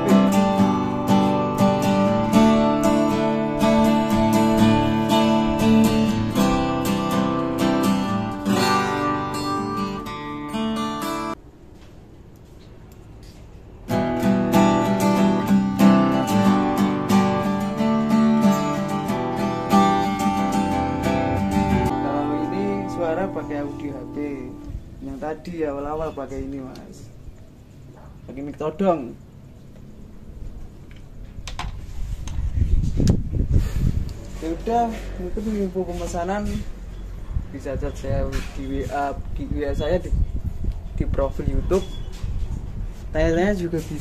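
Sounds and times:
acoustic guitar strumming chords: 0.0 - 11.4, 13.9 - 26.1.

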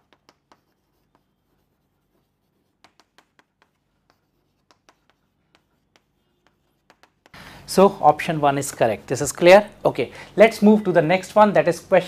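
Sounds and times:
chalk tapping on chalkboard: 0.0 - 7.4.

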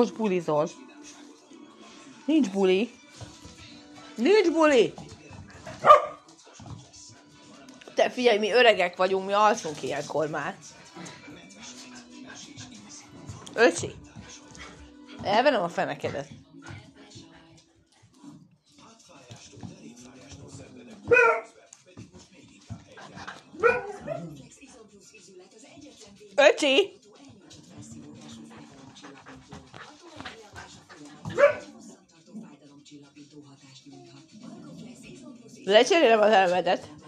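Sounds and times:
faint background music: 0.0 - 37.0
puppy barking: 5.8 - 6.2, 21.1 - 21.5, 23.6 - 24.3, 31.4 - 31.7.

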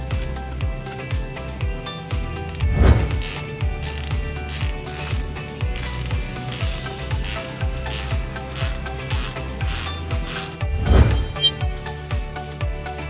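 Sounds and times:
background music with steady beat: 0.0 - 13.0
ratchet spanner clicking: 2.4 - 10.7
sharp metallic clink: 10.6 - 11.6.

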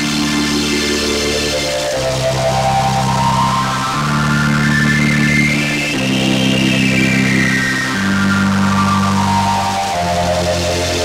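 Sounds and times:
synth sweep: 0.0 - 11.0
synthesizer string chords: 0.0 - 11.0.

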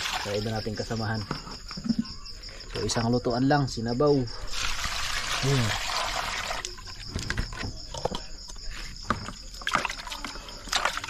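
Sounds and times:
water sloshing and splashing: 0.0 - 2.1, 4.4 - 11.0
high insect trill: 0.0 - 11.0.

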